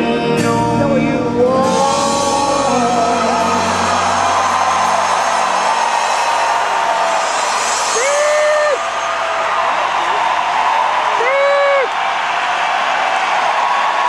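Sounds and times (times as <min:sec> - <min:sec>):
band's sustained final notes: 0:00.3 - 0:10.2
crowd cheering and applauding: 0:01.6 - 0:14.0
loud whoop: 0:02.9 - 0:14.0.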